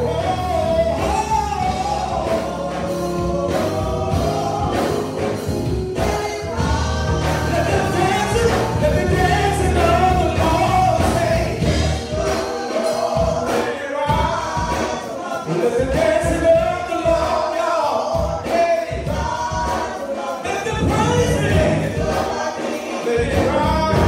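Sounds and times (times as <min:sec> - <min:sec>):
group singing gospel song: 0:00.0 - 0:24.0
instrumental accompaniment: 0:00.0 - 0:24.0.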